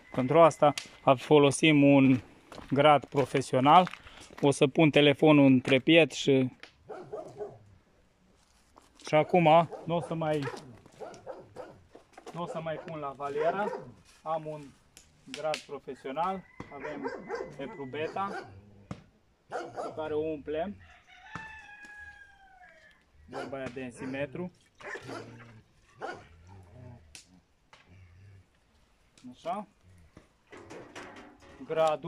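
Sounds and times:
faint rooster crowing: 0.0s - 1.2s, 16.2s - 18.5s, 20.7s - 23.5s.

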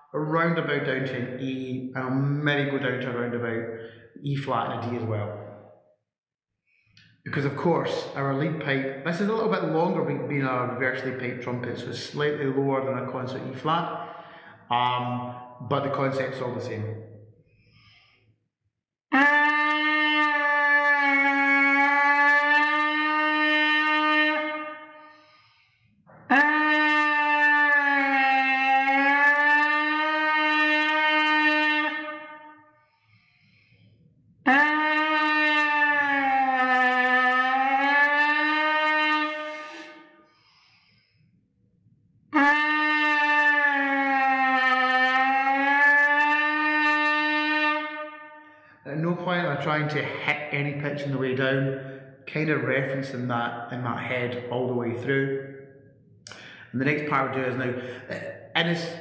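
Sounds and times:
trumpet leadpipe lip buzzing: 19.2s - 32.6s, 34.5s - 41.0s, 42.4s - 48.4s.

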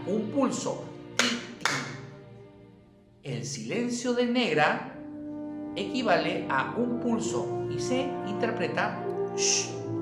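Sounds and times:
hand claps: 1.2s - 2.0s.

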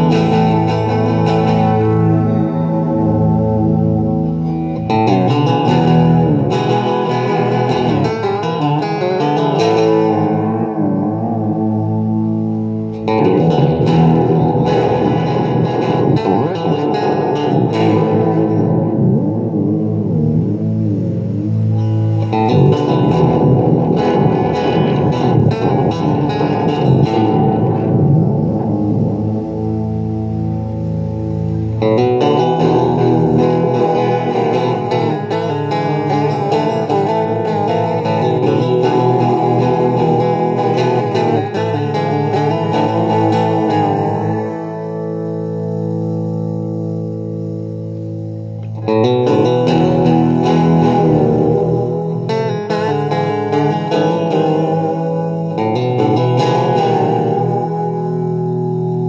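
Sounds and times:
fuzzy electric guitar chords: 0.0s - 59.0s.

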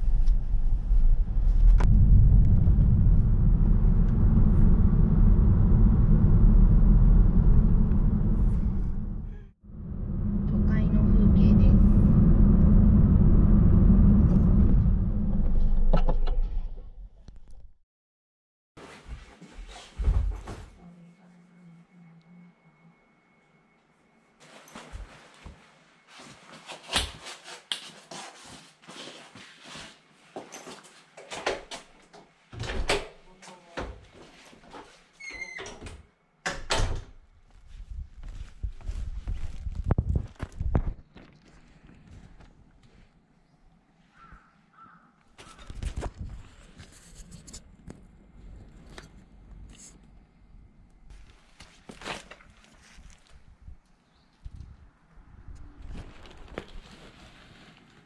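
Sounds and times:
low rumbling noise: 0.0s - 17.4s.

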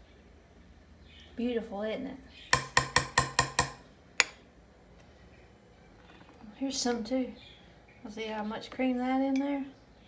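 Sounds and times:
metal spoon tapping glass jar: 2.6s - 4.4s.

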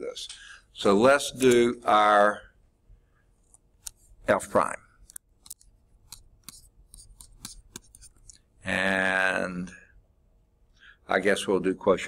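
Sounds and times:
stylus tapping on tablet screen: 5.1s - 8.4s.

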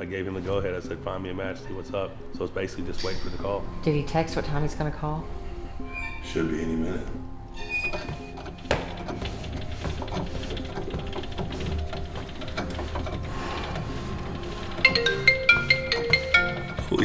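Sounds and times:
background music: 0.0s - 17.0s
smartphone ringtone: 14.8s - 16.8s.

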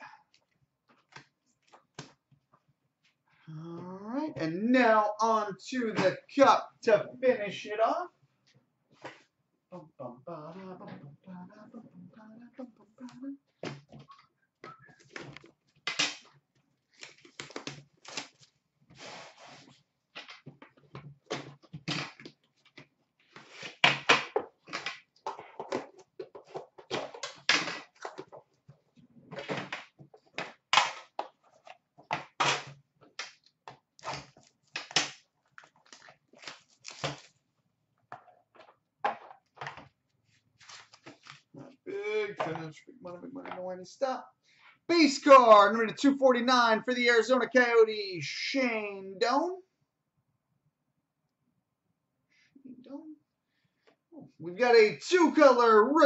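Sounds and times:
packaging rustling: 34.0s - 37.4s.

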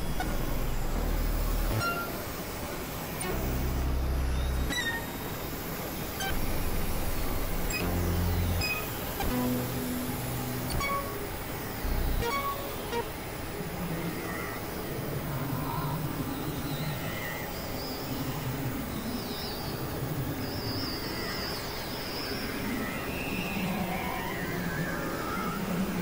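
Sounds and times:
short low synth notes: 0.0s - 2.2s, 3.2s - 4.8s, 6.2s - 13.2s
noisy electronic music wash: 0.0s - 13.5s.

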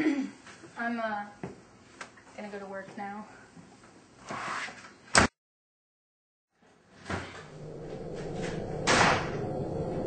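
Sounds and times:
short bang: 8.4s - 9.7s.

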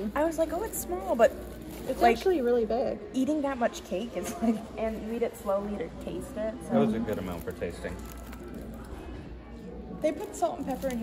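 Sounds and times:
paper bag rustling: 0.4s - 2.7s, 6.8s - 9.2s.

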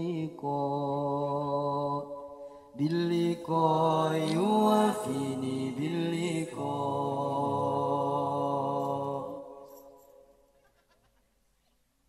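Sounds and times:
man singing: 0.0s - 9.6s.

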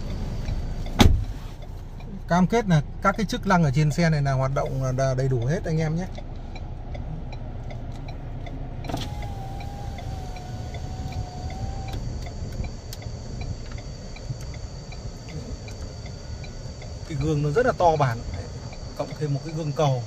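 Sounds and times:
diesel engine idling: 0.0s - 20.0s
click: 5.4s - 17.4s
small electric motor whining: 8.9s - 15.6s.

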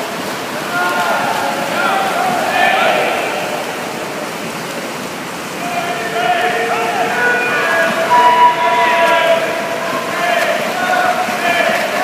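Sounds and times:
swimmers splashing pool water: 0.0s - 12.0s.

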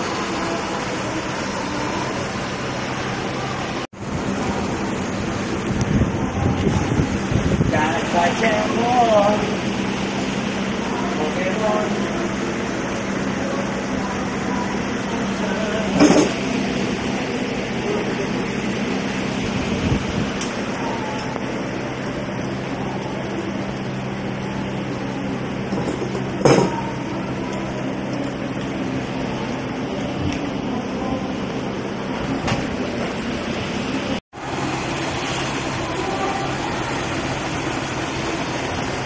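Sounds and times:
low machine hum: 0.0s - 39.0s.

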